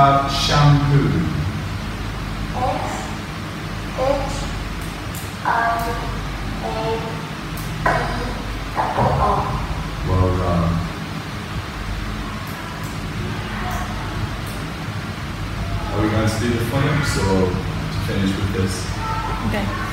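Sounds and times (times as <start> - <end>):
low room hum: 0.0 - 19.9.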